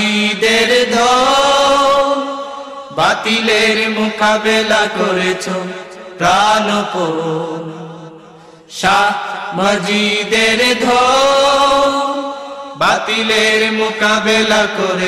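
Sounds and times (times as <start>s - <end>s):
person singing devotional song: 0.0s - 15.0s.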